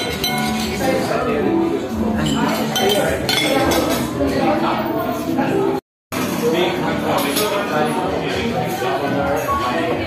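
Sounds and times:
cutlery clinking on plates: 0.0 - 0.9, 2.2 - 4.3, 7.1 - 7.8
chatter of diners: 0.0 - 10.0.

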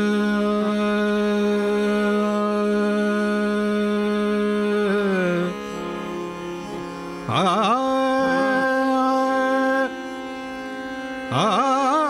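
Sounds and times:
man singing long note: 0.0 - 6.4, 7.3 - 10.1.

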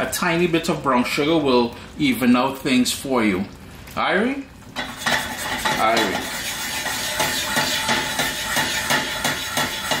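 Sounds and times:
pan knocking on stove grate: 4.8 - 10.0.

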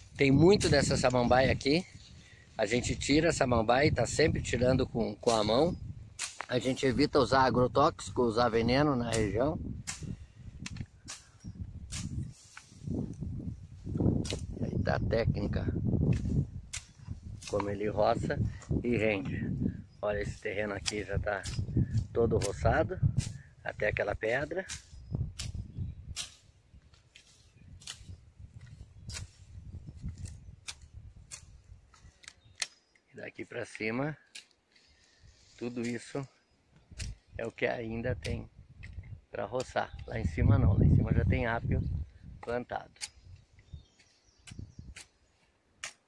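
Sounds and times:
machete chopping through brush: 6.2 - 6.8, 9.1 - 11.3, 11.9 - 12.8, 14.2 - 14.6, 16.0 - 17.8, 24.7 - 31.6, 34.3 - 34.6, 45.8 - 46.0.

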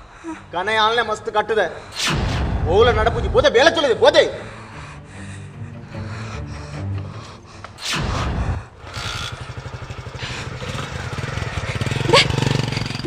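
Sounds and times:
engine-like puttering: 7.0 - 13.0.

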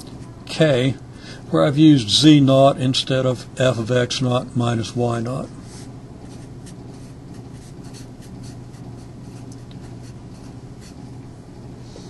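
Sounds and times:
steady low hum: 0.0 - 12.0
marker writing on whiteboard: 5.7 - 11.0.

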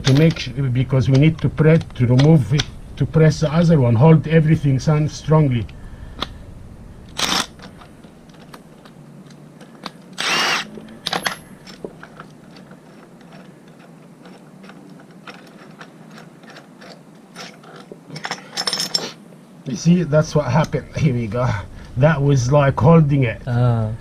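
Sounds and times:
cordless drill spinning: 7.2 - 7.6, 10.2 - 10.8.

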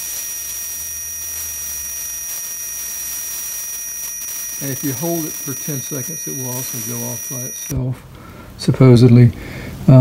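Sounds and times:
electric arc lighter whine: 0.0 - 7.8.

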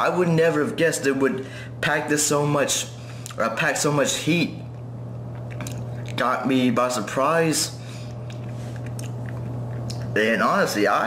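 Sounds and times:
steady low hum: 0.0 - 11.0
lip and tongue clicks: 5.3 - 6.2, 8.2 - 10.1.

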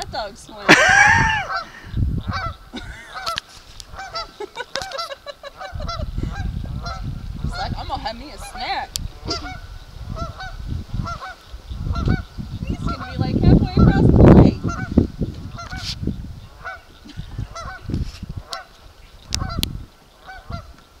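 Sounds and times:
geese honking: 0.6 - 20.8.

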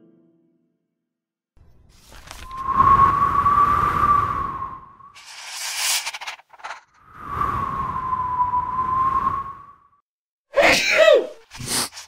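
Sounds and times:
cartoon sneeze: 10.6 - 11.4.

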